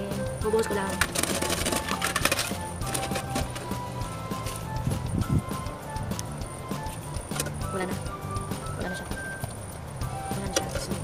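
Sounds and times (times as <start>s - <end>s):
background music: 0.0s - 11.0s
coins clinking and clattering: 0.7s - 3.8s.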